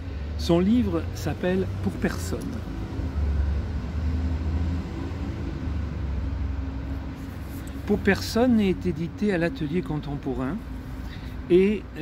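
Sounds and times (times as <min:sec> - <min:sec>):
faint engine hum: 0:00.0 - 0:12.0
street traffic rumble: 0:00.0 - 0:12.0.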